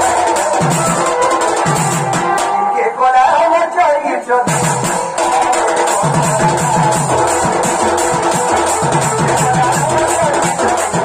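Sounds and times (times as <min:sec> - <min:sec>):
barrel drum beating: 0:00.0 - 0:02.7, 0:04.5 - 0:11.0.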